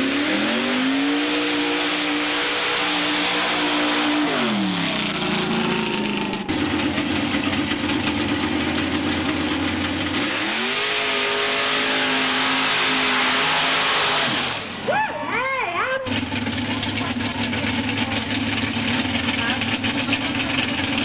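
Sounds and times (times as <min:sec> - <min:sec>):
vehicle engine revving: 0:00.0 - 0:14.9, 0:16.0 - 0:21.0.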